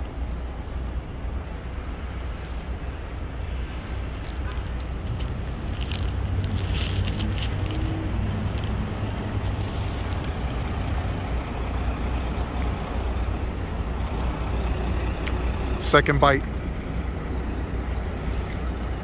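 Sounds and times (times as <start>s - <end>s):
traffic rumble: 0.0s - 19.0s.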